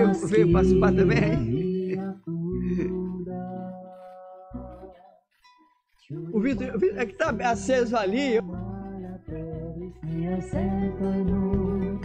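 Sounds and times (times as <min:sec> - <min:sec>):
person singing: 0:00.0 - 0:05.3, 0:06.0 - 0:12.0
acoustic guitar: 0:00.0 - 0:12.0.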